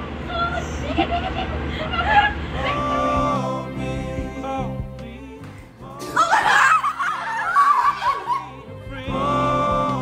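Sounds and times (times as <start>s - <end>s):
young people laughing and shrieking: 0.8s - 2.8s, 6.0s - 8.6s.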